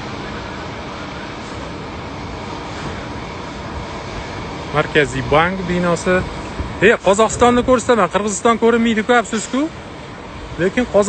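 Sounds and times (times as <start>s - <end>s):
distant city traffic wash: 0.0s - 11.0s.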